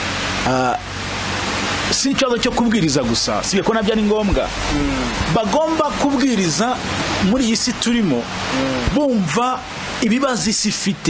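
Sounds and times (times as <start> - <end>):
loud steady hiss: 0.0 - 11.0
faint low hum: 1.9 - 9.1
man saying short syllable: 4.7 - 5.2, 8.5 - 9.0.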